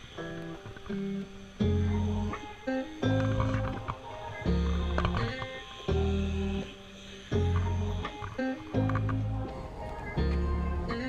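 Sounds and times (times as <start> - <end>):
guitar-led music with deep bass: 0.0 - 11.0.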